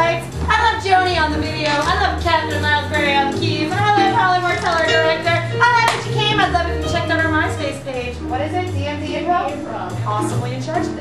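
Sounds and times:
instrumental accompaniment: 0.0 - 11.0
sharp clap: 5.8 - 6.2.

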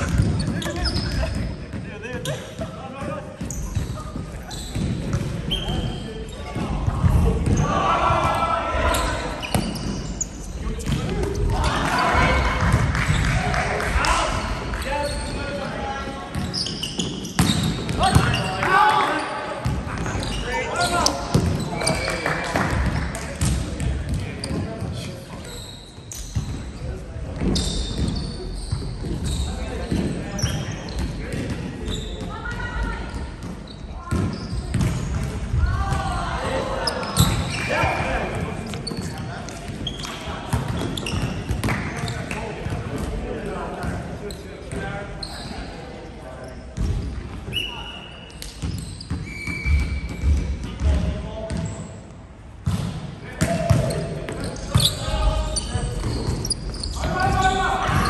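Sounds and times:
shoes squeaking on court: 0.0 - 6.7, 8.9 - 11.6, 14.5 - 22.3, 24.1 - 35.3, 36.8 - 43.0, 44.3 - 45.8, 46.4 - 50.8, 51.5 - 52.0, 53.6 - 58.0
players' voices echoing: 0.0 - 58.0
volleyball bouncing on wooden floor: 33.4 - 36.1.

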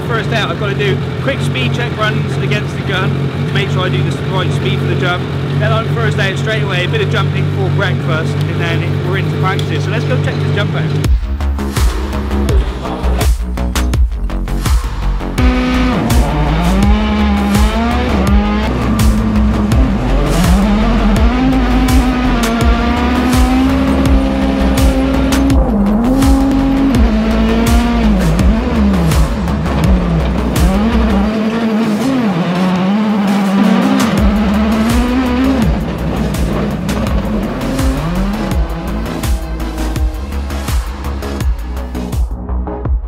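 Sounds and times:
race car engine revving: 0.0 - 42.3
music with deep bass: 0.0 - 43.0.

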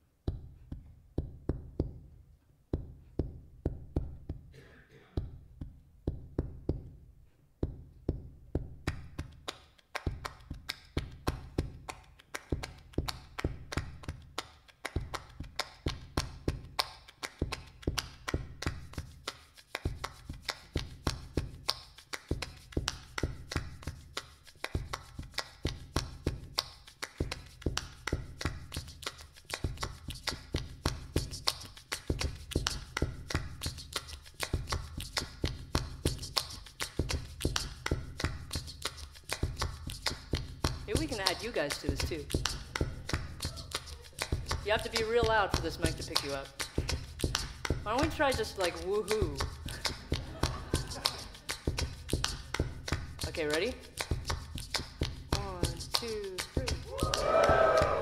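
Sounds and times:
rapid tapping and clicking percussion: 8.6 - 57.2.

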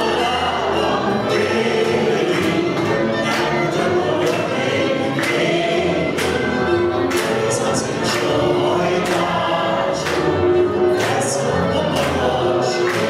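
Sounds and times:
clarinet: 0.0 - 13.0
double bass: 0.0 - 13.0
violin: 0.0 - 13.0.

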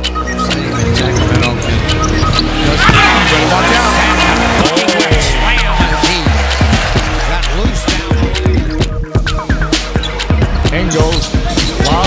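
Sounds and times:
background music: 0.0 - 12.0
sneaker squeaks: 0.2 - 3.0.

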